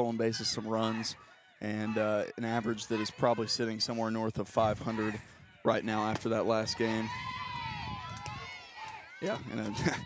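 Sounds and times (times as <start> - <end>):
players chattering and cheering: 0.0 - 10.0.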